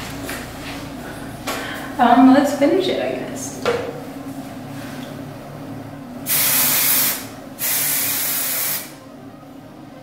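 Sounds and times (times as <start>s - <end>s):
aerosol spray hissing: 6.3s - 8.9s.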